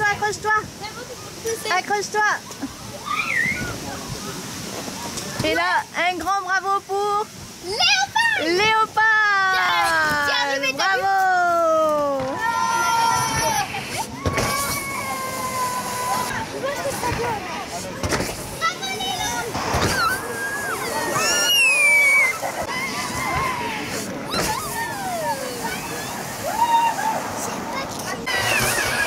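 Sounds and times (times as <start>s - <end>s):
children shouting and squealing: 2.4s - 4.5s, 7.6s - 8.6s, 9.2s - 17.5s, 18.4s - 29.0s
inflatable tube sliding scrape: 13.2s - 26.3s, 27.0s - 29.0s.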